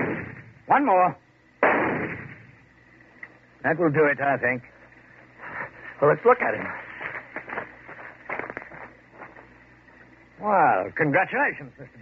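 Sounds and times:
rifle shot crack: 0.0 - 0.6, 1.6 - 2.7.

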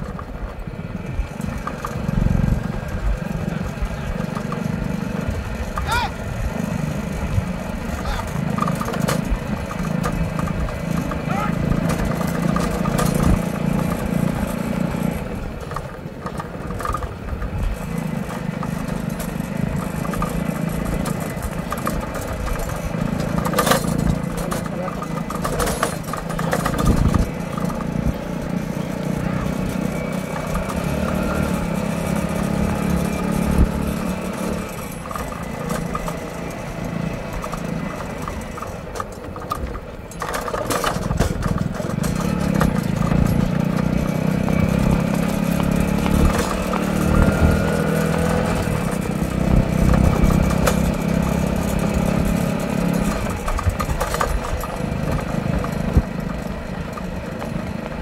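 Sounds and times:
vehicle engine running: 0.0 - 58.0.

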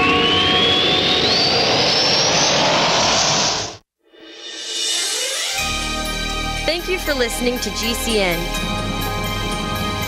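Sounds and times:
rising whistling whoosh: 0.0 - 5.7.

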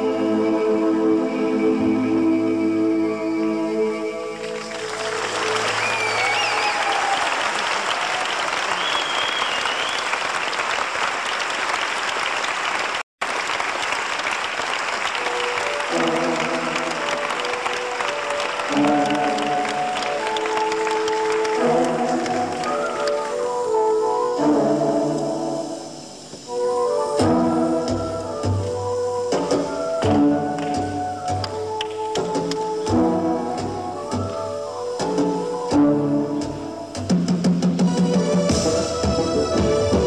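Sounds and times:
whistles: 1.3 - 10.7, 22.4 - 23.8
audience applauding and cheering: 4.4 - 23.8
keyboard notes: 15.2 - 40.0.

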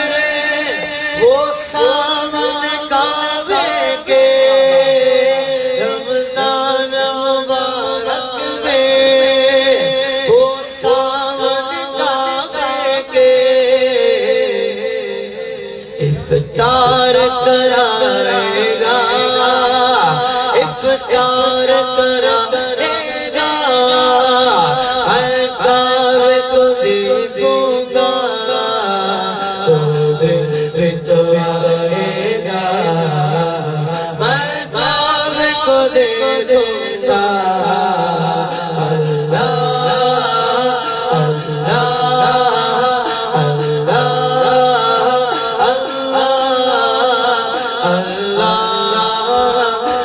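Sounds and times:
man singing devotional song: 0.0 - 50.0
low hummed vocal drone: 28.8 - 50.0.

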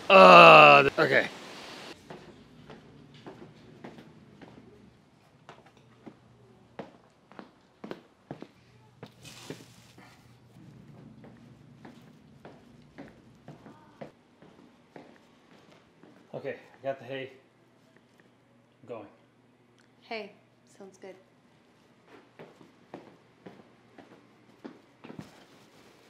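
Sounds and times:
faint footsteps: 2.0 - 16.8, 21.6 - 26.0
rustle of hay: 9.2 - 10.0.

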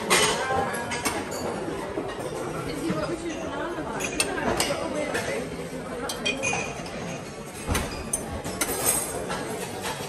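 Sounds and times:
diners chatter: 0.0 - 10.0.

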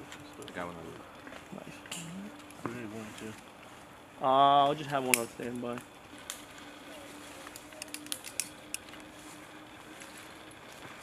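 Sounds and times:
sharp light clicks: 5.0 - 6.4, 7.5 - 9.1.

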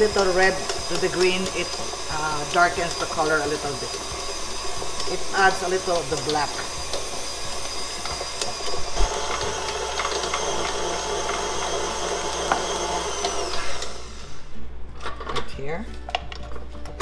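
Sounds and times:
stand mixer motor whine: 0.0 - 14.7.

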